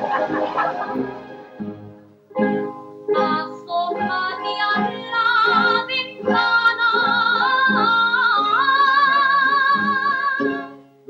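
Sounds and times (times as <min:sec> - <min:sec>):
instrumental accompaniment with beat: 0:00.0 - 0:03.4
woman singing: 0:03.1 - 0:10.7.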